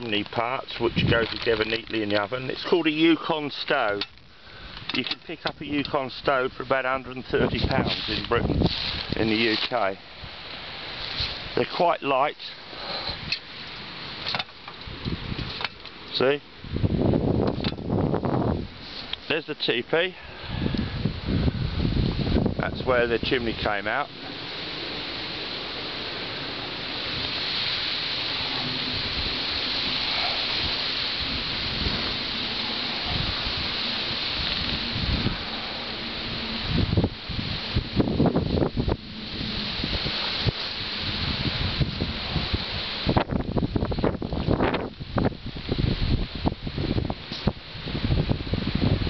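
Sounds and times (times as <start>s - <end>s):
wind buffeting microphone: 0.0s - 12.0s, 13.1s - 19.3s, 20.2s - 49.0s
wind rustling through trees: 0.0s - 49.0s.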